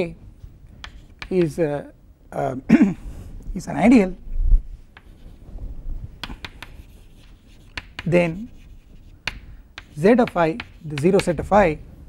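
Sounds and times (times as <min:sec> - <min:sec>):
chalk tapping on a chalkboard: 0:00.8 - 0:01.6, 0:04.9 - 0:05.4, 0:06.2 - 0:11.6.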